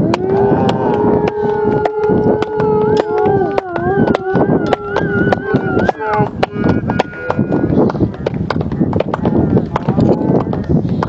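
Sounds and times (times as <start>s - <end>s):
spectators clapping: 0.0s - 10.1s
voices calling out: 0.0s - 10.8s.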